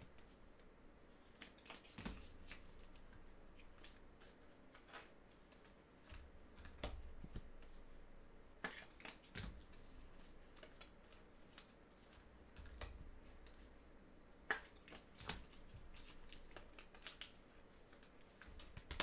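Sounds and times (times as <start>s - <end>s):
trading cards tapping and rustling: 1.4s - 7.8s, 8.6s - 13.6s, 14.5s - 19.0s.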